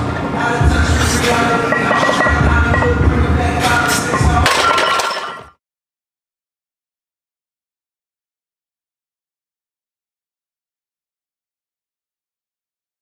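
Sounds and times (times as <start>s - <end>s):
music with heavy pulsing bass: 0.0s - 4.5s.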